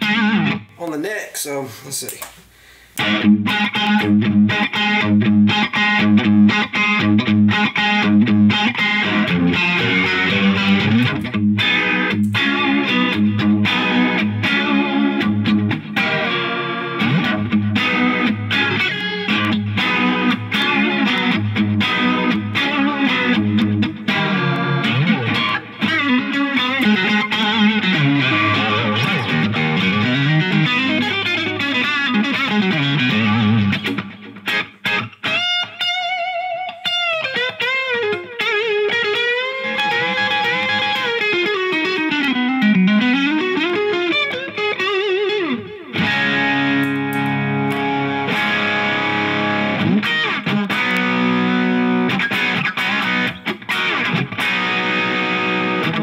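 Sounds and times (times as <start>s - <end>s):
electric guitar riffs and chords: 0.0s - 0.8s, 3.0s - 56.0s.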